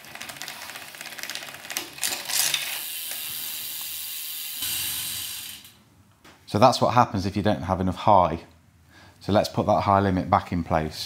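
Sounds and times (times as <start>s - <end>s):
bike chain thrown off chainring: 1.7s - 5.8s
freehub ratchet clicks buzzing: 2.4s - 5.8s.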